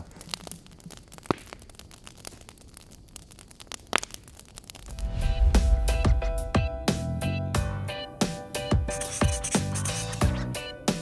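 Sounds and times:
battery crackling and popping: 0.0s - 5.2s.

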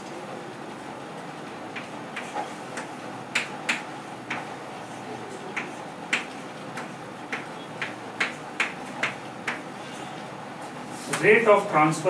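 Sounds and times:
chalk tapping on chalkboard: 1.7s - 4.5s, 5.6s - 9.7s.

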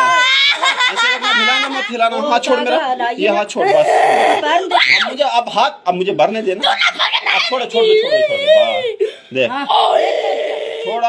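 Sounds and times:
boy crying: 0.0s - 0.7s, 1.4s - 5.2s, 6.6s - 11.0s.

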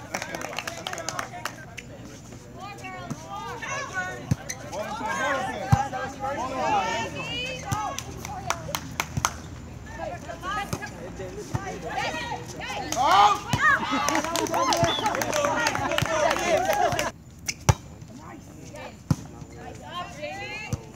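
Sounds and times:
voices calling and shouting: 0.0s - 20.9s.

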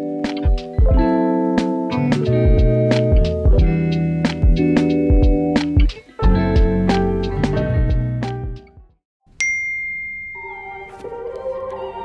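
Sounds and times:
soft background music: 0.0s - 8.8s, 10.2s - 12.0s
bright notification ding: 9.4s - 11.0s.

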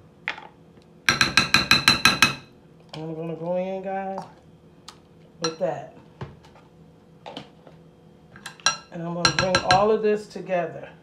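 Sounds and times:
metal spoon clinking against glass bowl: 8.6s - 9.8s.

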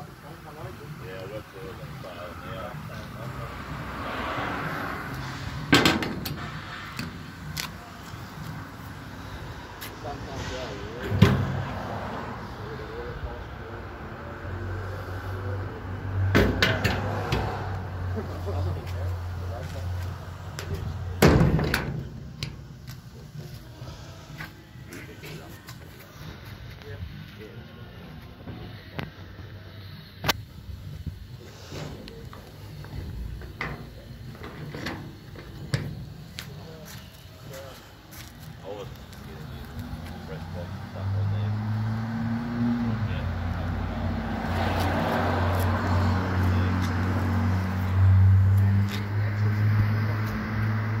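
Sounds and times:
metal knocks and clunks: 5.7s - 7.2s, 16.3s - 17.5s, 21.2s - 22.6s.

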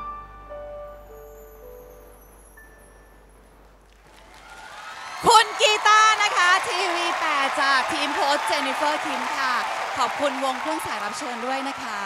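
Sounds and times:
audience applause and cheering: 3.9s - 12.0s.

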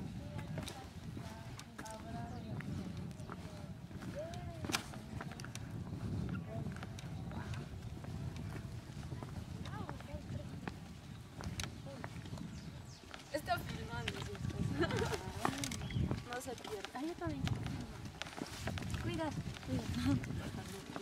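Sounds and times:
distant people talking: 0.0s - 21.0s
footsteps: 0.0s - 21.0s.

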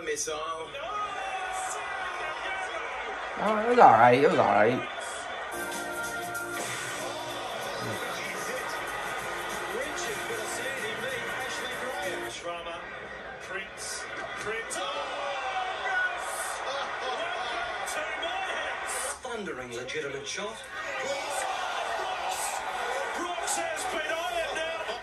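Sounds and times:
person talking: 3.4s - 4.9s
background music: 3.4s - 12.4s.

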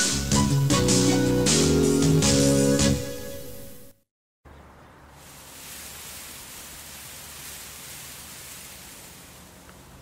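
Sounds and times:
steady hiss: 5.2s - 10.0s.

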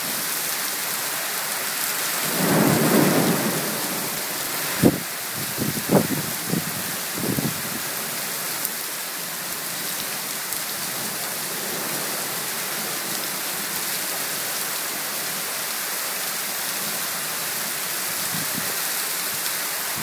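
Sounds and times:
heavy rain on flooded street: 0.0s - 20.0s.

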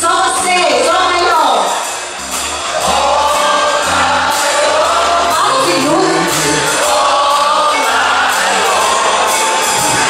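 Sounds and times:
drums: 0.0s - 10.0s
bass guitar: 2.1s - 10.0s
voices singing together: 2.6s - 10.0s
electric guitars: 5.2s - 7.0s.

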